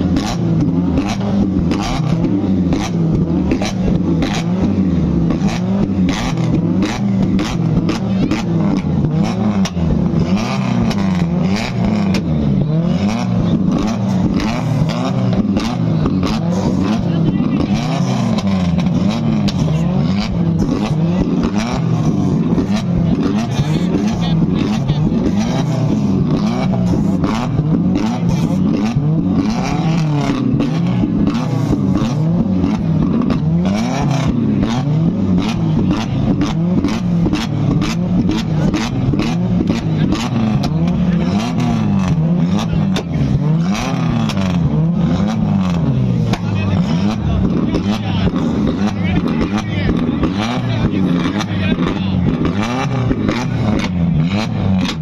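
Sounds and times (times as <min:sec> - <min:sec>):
car engines revving: 0:00.0 - 0:55.0
exhaust crackling and popping: 0:00.0 - 0:55.0.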